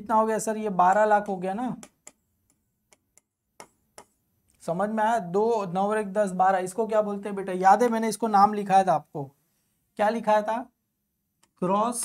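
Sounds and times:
stylus tapping touchscreen: 1.1s - 4.6s, 11.3s - 12.0s.

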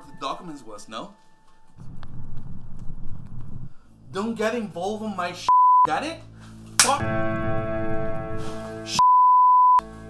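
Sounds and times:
censor bleep: 5.5s - 5.9s, 9.0s - 9.8s.

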